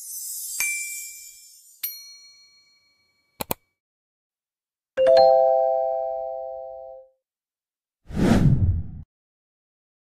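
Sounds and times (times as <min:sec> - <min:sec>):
bell-like chime: 0:00.0 - 0:03.4
click: 0:03.4 - 0:03.6
short loud whoosh: 0:08.1 - 0:09.1.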